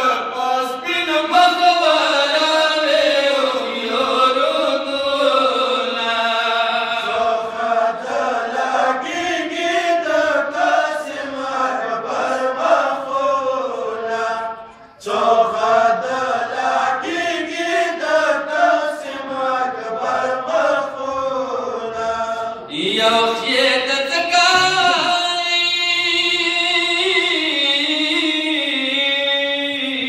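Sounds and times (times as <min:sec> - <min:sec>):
men chanting in unison: 0:00.0 - 0:30.0.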